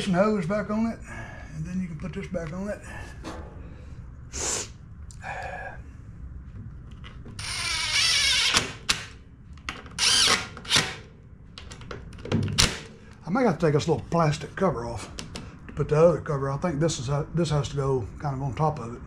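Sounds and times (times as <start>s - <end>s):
cordless driver driving screws: 10.0s - 11.0s.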